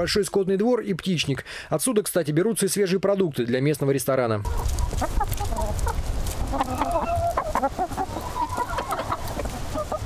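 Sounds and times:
hens clucking: 4.4 - 10.0.

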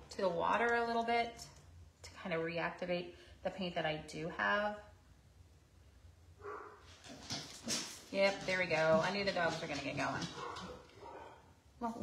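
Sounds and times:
dog barking: 6.4 - 6.8, 10.3 - 11.5.

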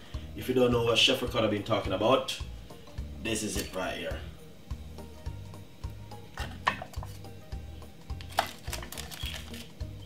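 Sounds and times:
background music with low beat: 0.0 - 10.0.

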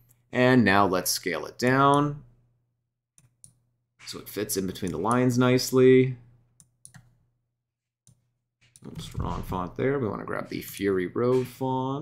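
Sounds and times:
computer mouse clicks: 3.2 - 4.2, 6.6 - 7.2, 8.1 - 9.0.

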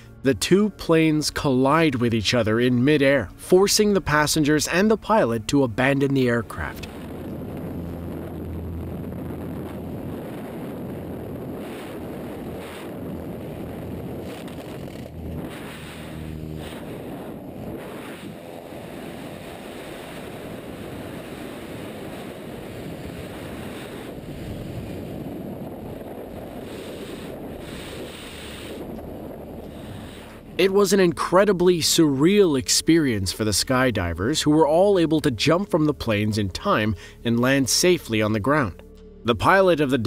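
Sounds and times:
freefall wind buffeting microphone: 4.1 - 37.2.

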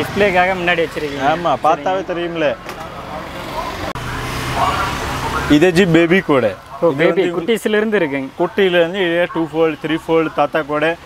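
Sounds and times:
man talking: 0.0 - 11.0
street traffic rumble: 0.0 - 11.0.

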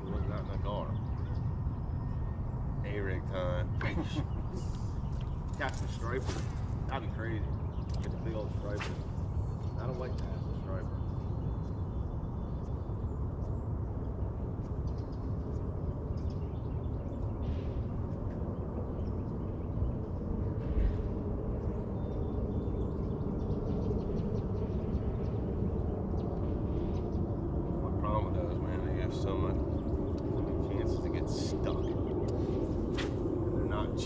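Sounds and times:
low rumble: 0.0 - 34.0.

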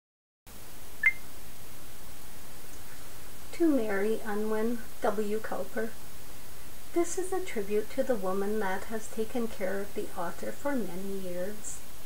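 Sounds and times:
room noise hiss: 0.5 - 12.0.

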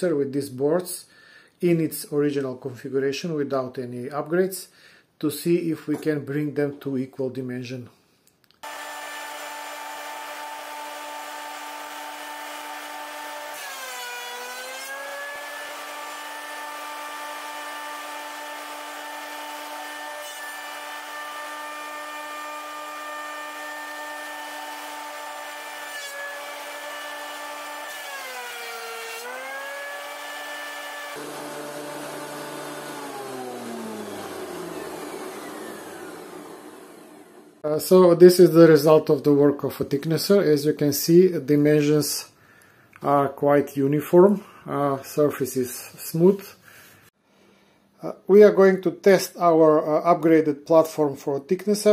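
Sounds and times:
planer motor whine: 8.6 - 37.6.

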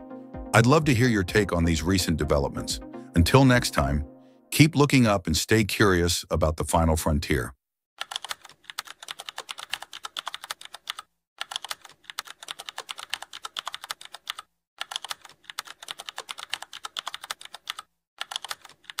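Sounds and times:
computer keyboard typing: 8.0 - 19.0.

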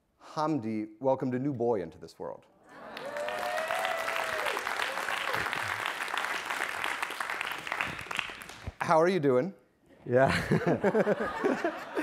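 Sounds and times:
audience applauding: 2.7 - 8.9.

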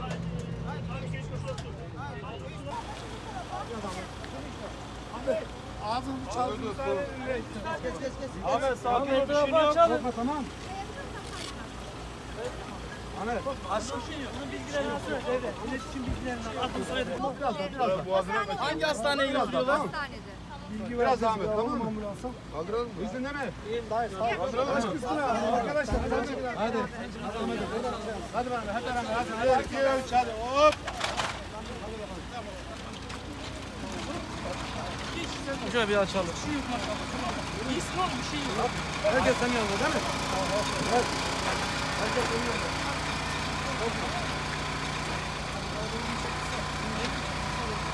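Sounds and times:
people talking: 0.0 - 47.9
people's voices: 0.0 - 47.9
vehicle engine idling: 0.0 - 47.9.

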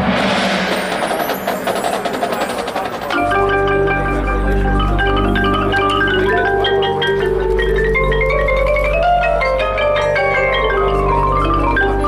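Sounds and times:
rushing swell: 0.0 - 3.2
fast percussion strikes: 0.0 - 12.0.

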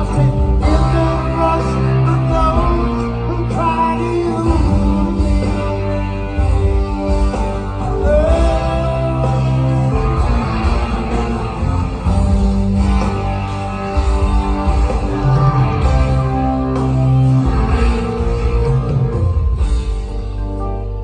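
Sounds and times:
instrumental rock band playing: 0.0 - 21.0.

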